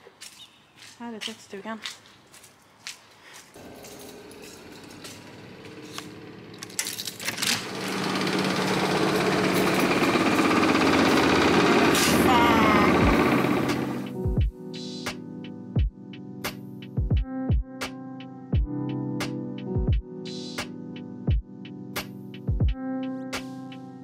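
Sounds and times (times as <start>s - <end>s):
laundry machines rattling: 3.6s - 14.2s.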